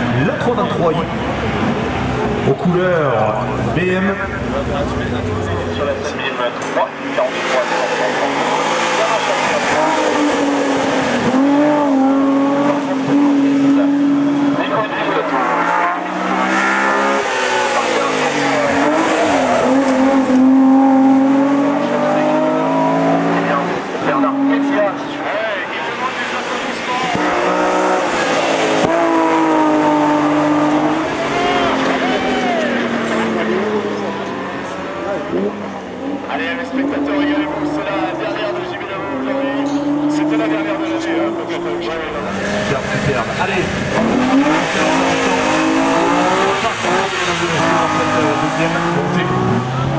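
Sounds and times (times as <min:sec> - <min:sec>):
racing engine accelerating: 0:00.0 - 0:49.9.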